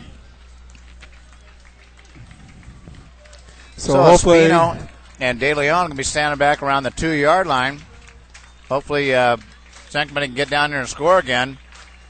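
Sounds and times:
murmur of spectators: 0.0s - 12.0s
steady low hum: 0.0s - 12.0s.

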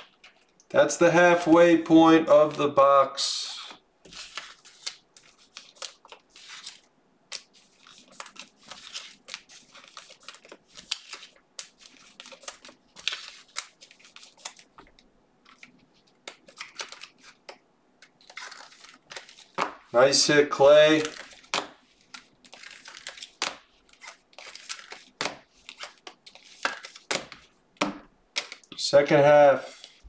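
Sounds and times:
cards rustling and sliding: 2.3s - 30.0s.

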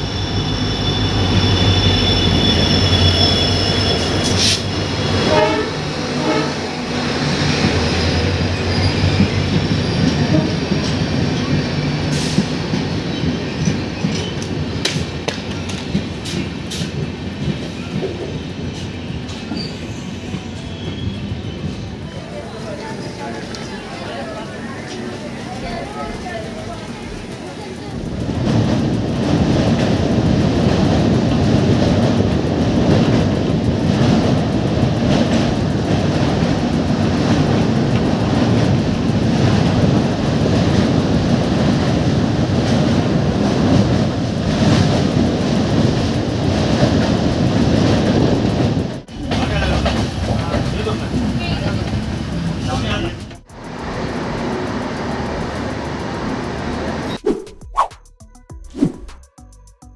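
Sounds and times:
train rumbling over bridge: 0.0s - 57.3s.

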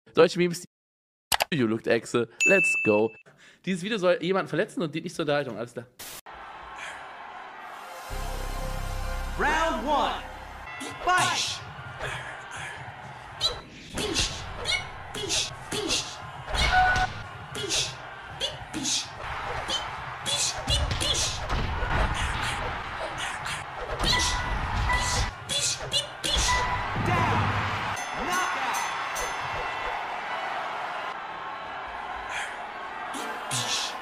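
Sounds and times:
crowd cheering: 6.3s - 34.0s.

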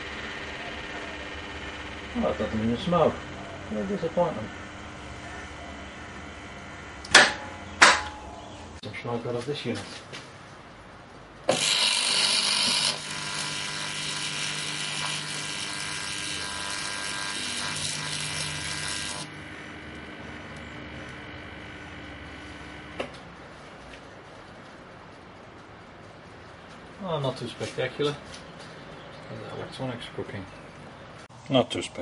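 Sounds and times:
loud electrical buzz: 0.0s - 8.8s, 11.4s - 23.9s
transformer hum: 0.0s - 8.8s, 10.4s - 27.0s
crackling arcing: 11.5s - 23.4s.

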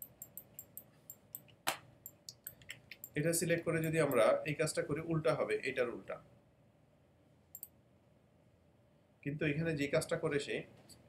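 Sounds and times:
computer mouse click: 0.0s - 3.2s, 7.5s - 7.7s.

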